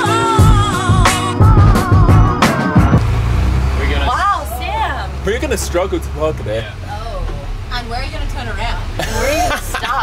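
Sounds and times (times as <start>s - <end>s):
backing music with singing: 0.0s - 3.0s
bus engine running: 0.0s - 10.0s
drum hits: 0.4s - 3.2s.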